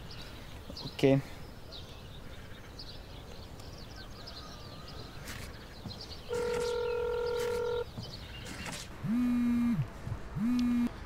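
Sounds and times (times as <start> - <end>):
phone ringing tone beeps: 6.3 - 7.9.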